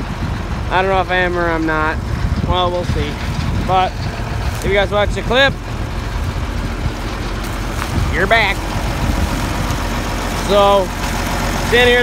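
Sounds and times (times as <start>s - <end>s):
wind noise on microphone: 0.0s - 10.4s
farm machinery rumbling: 0.0s - 12.0s.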